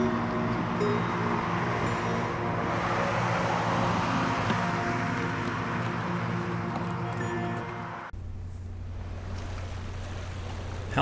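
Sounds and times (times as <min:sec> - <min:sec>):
background music: 0:00.0 - 0:08.1
car driving past: 0:00.7 - 0:08.1.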